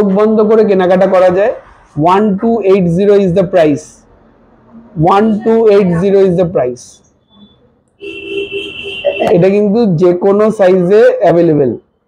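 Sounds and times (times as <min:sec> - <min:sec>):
high electronic tone: 0:04.7 - 0:09.5.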